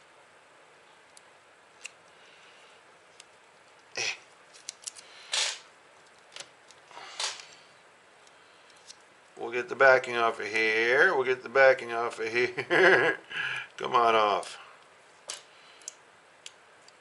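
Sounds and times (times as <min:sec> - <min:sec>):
short hissing noises: 0:05.0 - 0:05.7, 0:06.9 - 0:07.6.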